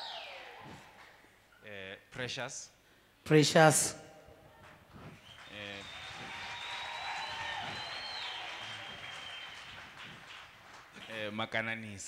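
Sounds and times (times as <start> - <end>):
congregation applauding: 4.6 - 11.4.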